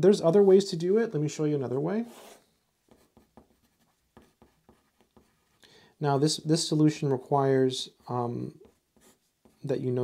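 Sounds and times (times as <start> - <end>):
pencil writing on paper: 2.1 - 5.6, 8.6 - 9.7.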